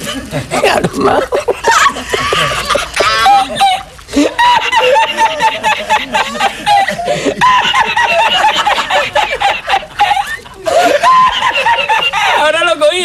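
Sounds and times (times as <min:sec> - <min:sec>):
man laughing hard: 0:00.0 - 0:12.8.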